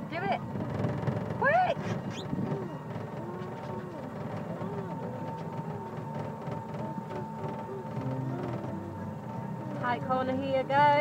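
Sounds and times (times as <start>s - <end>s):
faint voices: 0.0s - 11.0s
tractor motor whining: 0.0s - 11.0s.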